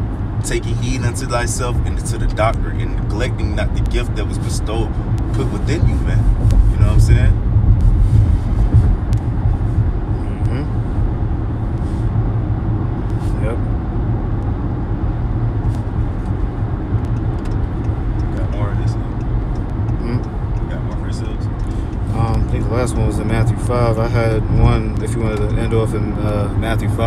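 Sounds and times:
steady low rumble: 0.0s - 27.0s.

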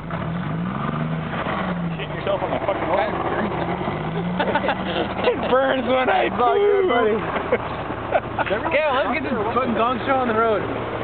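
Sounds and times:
truck engine running: 0.0s - 11.0s
people talking: 1.9s - 3.8s, 4.4s - 10.7s.

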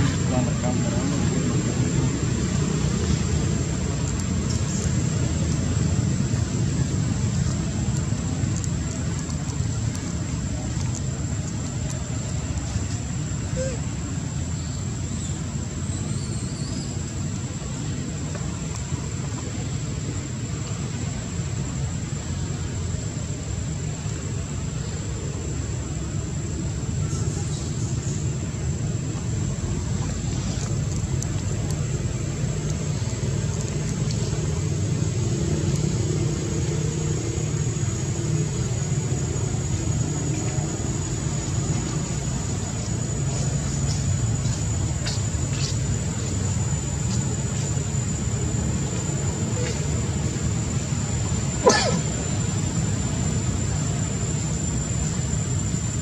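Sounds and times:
high-pitched whine: 0.0s - 56.0s
low outdoor rumble: 0.0s - 56.0s.

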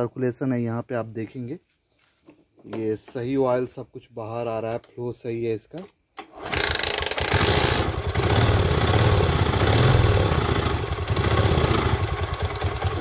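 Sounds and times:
scooter engine idling: 7.2s - 13.0s.

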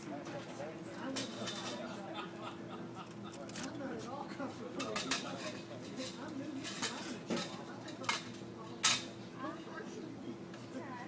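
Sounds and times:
faint background voices: 0.0s - 11.0s
cutlery clinking against dishes: 1.1s - 1.9s, 4.8s - 9.2s.

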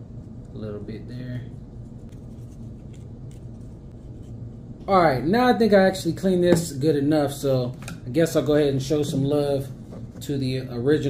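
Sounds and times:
paper towel scratching: 1.8s - 4.4s.

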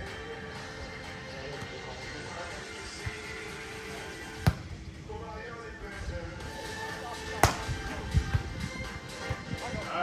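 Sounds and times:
background music: 0.0s - 10.0s
volleyball being struck: 4.4s - 4.7s, 7.4s - 7.8s.

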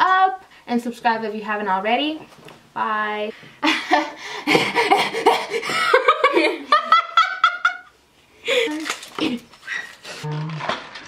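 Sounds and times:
woman laughing: 3.6s - 7.9s.

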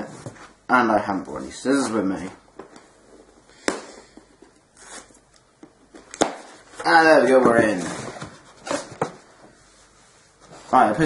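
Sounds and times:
cardboard rustling: 5.8s - 10.8s.

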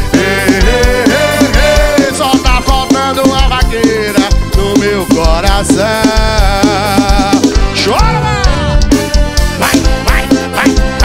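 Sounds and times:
live band dance music: 0.0s - 11.0s.

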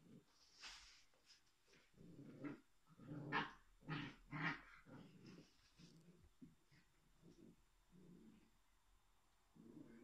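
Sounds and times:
dog growling: 2.0s - 8.6s, 9.5s - 10.0s.

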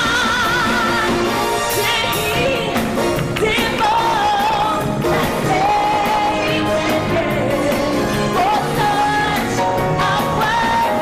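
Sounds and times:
drums and cymbals: 0.0s - 11.0s
live band playing: 0.0s - 11.0s.

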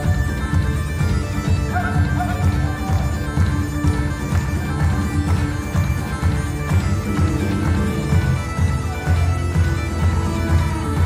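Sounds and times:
bagpipes playing over drone: 0.0s - 11.0s
drums keeping steady beat: 0.0s - 11.0s.

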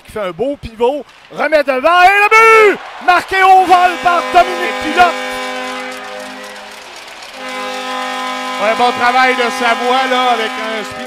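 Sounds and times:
arena goal horn blast: 3.2s - 11.0s.

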